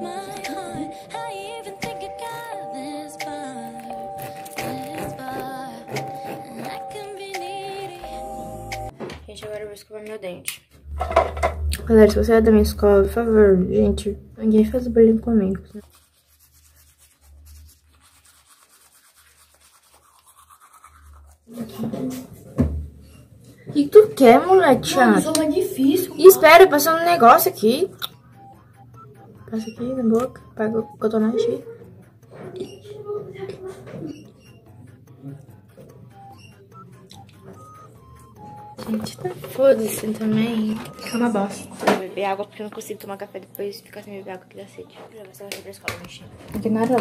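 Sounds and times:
soft background music: 0:00.0 - 0:18.2, 0:21.1 - 0:47.0
toothbrush scrubbing teeth: 0:02.3 - 0:08.2, 0:14.6 - 0:22.3.

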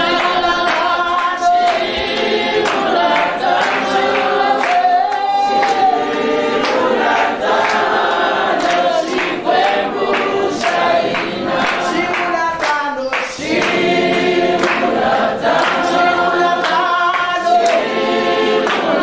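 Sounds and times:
group singing a hymn in harmony: 0:00.0 - 0:19.0.

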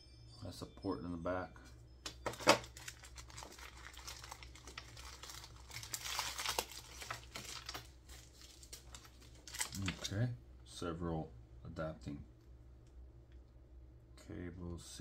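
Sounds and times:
packaging wrap crinkling: 0:02.1 - 0:10.2.

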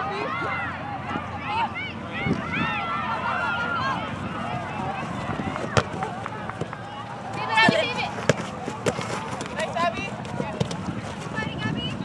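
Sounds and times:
distant voices: 0:00.0 - 0:12.0
ball kicked with a thud: 0:05.5 - 0:06.8, 0:07.4 - 0:09.6.

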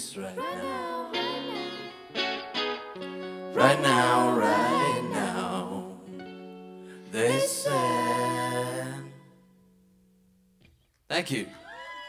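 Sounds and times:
guitar chord ringing out: 0:01.0 - 0:07.2.

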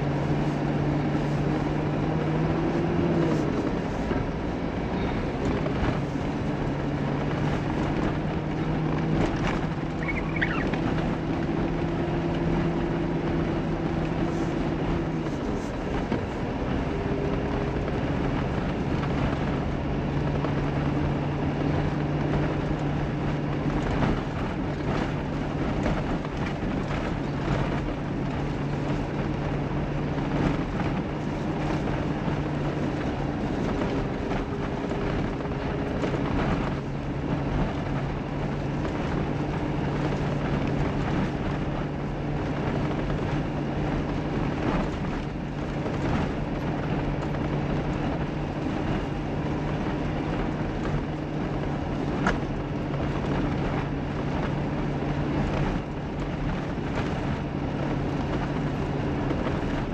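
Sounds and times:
car engine drone: 0:00.0 - 0:59.9
road and tyre noise: 0:00.0 - 0:59.9.

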